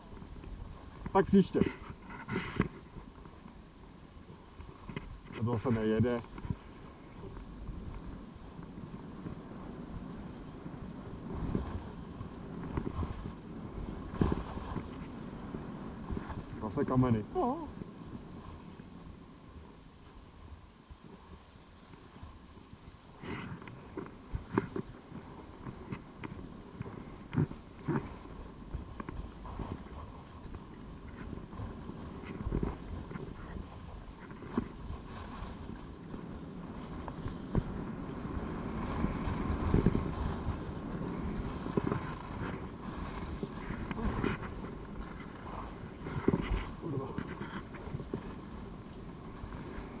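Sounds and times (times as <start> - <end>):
skis scraping over snow: 4.6 - 17.2, 23.1 - 50.0
wind on microphone: 6.3 - 18.8, 23.2 - 50.0.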